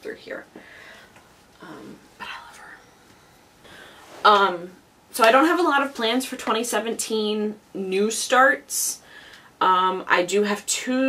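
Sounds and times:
woman speaking softly: 1.6 - 2.8
faint breathy sound: 2.2 - 4.2.

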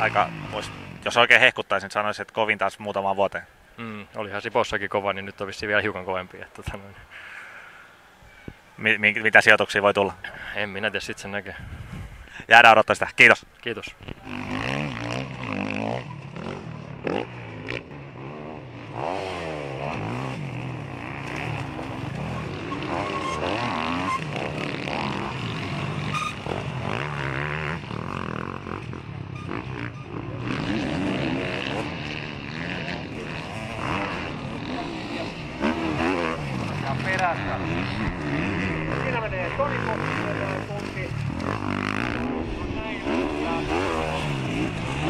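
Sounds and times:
dirt bike engine revving: 0.0 - 1.3, 14.0 - 45.0.

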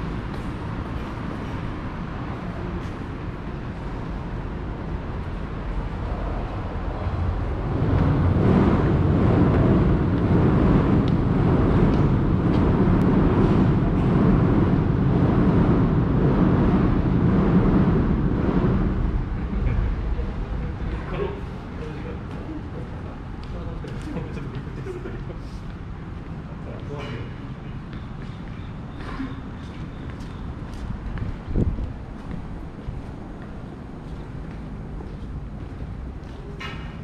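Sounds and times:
train rumbling overhead: 0.0 - 37.0.

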